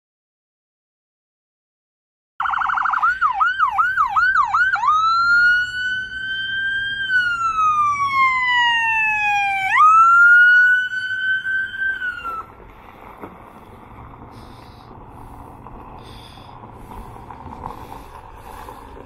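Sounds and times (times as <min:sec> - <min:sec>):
electronic siren yelp and wail: 0:02.4 - 0:12.5.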